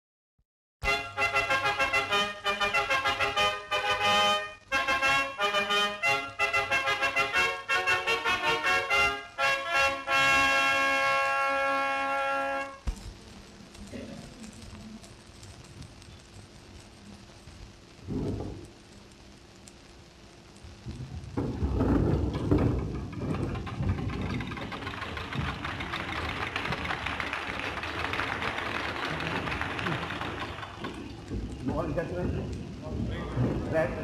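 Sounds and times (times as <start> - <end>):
film soundtrack hiss: 0.8 - 34.0
orchestra applauding: 24.0 - 31.3.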